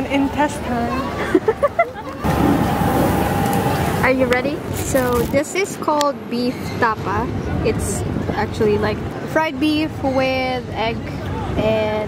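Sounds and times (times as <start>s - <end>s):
crowded market noise: 0.0s - 12.0s.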